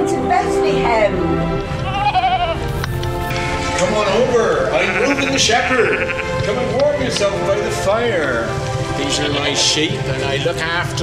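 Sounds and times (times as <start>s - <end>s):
background music: 0.0s - 11.0s
sheep bleating: 1.8s - 2.7s, 4.7s - 6.5s.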